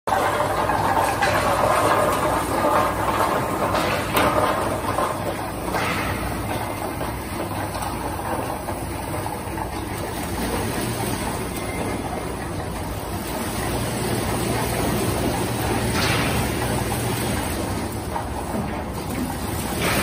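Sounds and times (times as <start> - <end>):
machine hum: 0.1 - 20.0.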